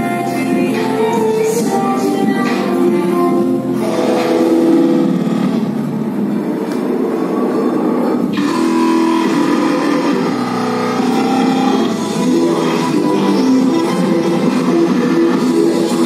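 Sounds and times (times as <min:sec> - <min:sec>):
dance music over loudspeakers: 0:00.0 - 0:16.0.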